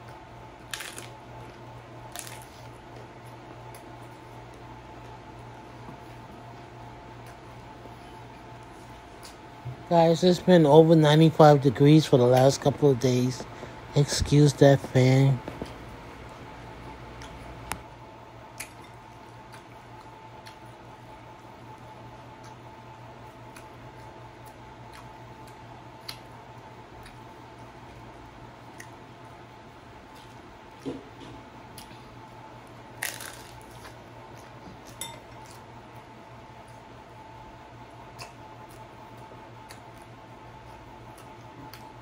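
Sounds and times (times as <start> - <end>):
crunching of eating tacos: 0.0 - 10.4, 11.2 - 42.0
electric fan humming: 0.0 - 42.0.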